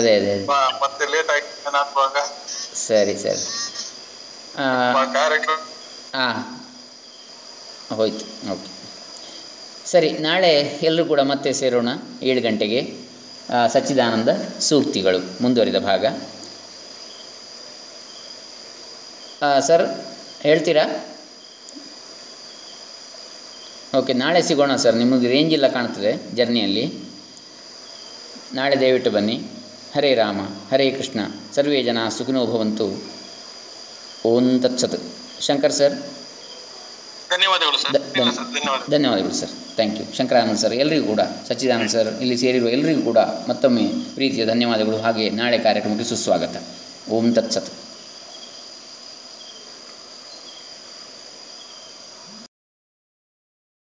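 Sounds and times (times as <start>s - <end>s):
faint hiss: 0.0s - 52.5s
insects chirring: 0.0s - 52.5s
high-pitched tone: 2.3s - 4.0s.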